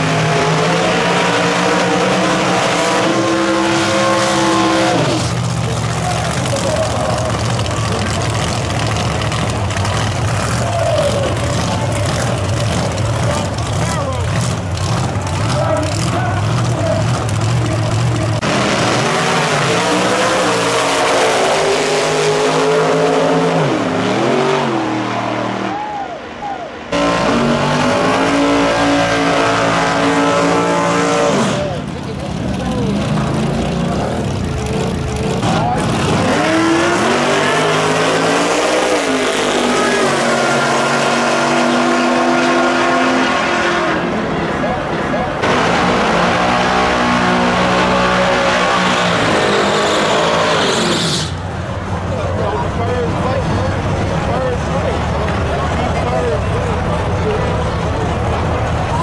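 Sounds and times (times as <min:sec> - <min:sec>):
racing car engines revving: 0:00.0 - 0:59.0.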